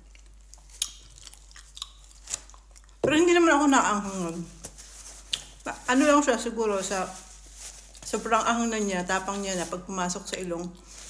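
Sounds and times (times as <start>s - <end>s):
wet mouth clicks chewing: 0.0s - 3.0s.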